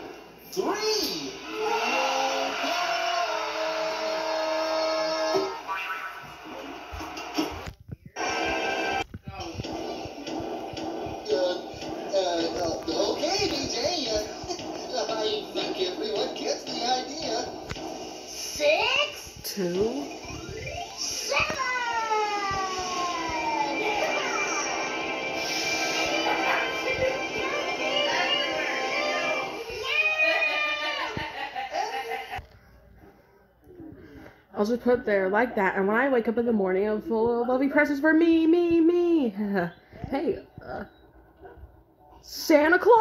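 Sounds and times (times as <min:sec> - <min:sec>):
stage show music from television: 0:00.0 - 0:32.4.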